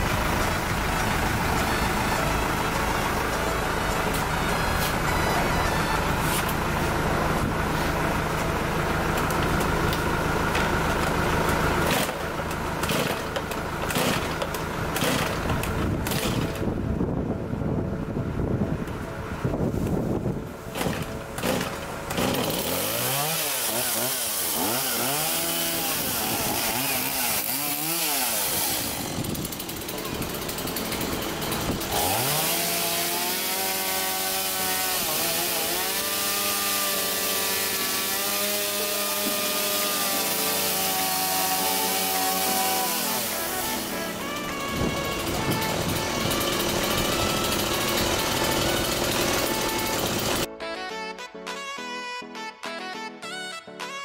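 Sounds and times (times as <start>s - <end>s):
chainsaw revving: 9.0s - 16.7s, 20.7s - 50.5s
chainsaw pull-started: 9.1s - 16.7s, 20.7s - 50.5s.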